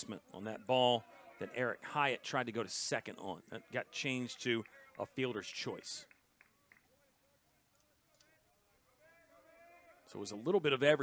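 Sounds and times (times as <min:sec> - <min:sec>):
faint ballpark ambience: 0:00.0 - 0:11.0.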